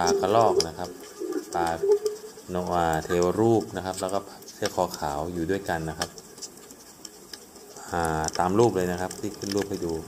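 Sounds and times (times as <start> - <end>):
man narrating: 0.0 - 6.2, 7.8 - 10.0.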